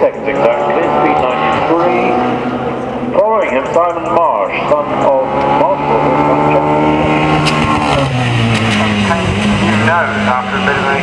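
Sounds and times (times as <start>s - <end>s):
race car engine passing at full throttle: 0.0s - 11.0s.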